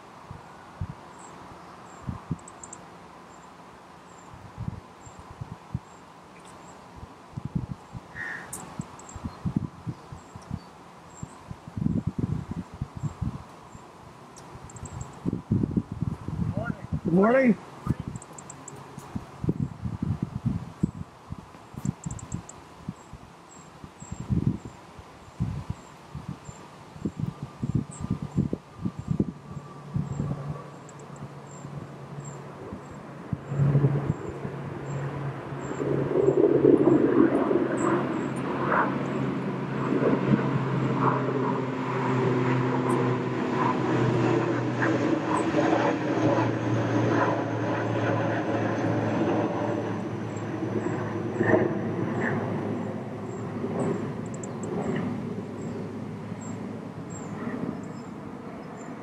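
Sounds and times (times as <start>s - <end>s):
engine drone: 28.8s - 58.9s.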